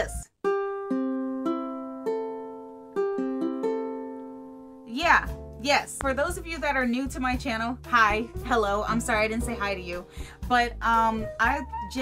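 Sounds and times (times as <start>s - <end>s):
ukulele strings plucked: 0.0s - 12.0s.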